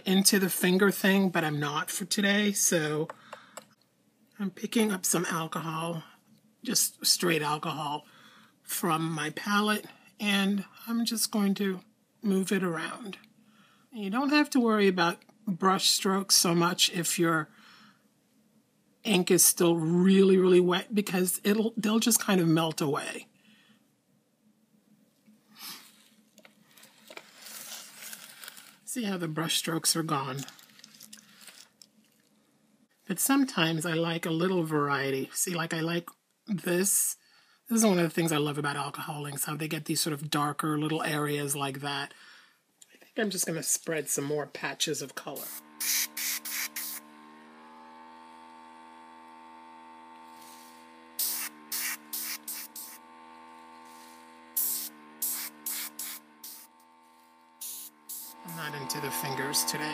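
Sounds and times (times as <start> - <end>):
plastic sheeting rustling: 26.7 - 28.9
airbrush air bursts: 45.4 - 47.1, 50.2 - 59.9.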